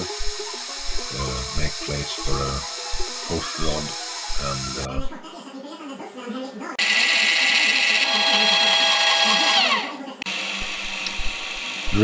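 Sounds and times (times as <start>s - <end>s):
milling machine drilling metal: 6.8s - 12.0s.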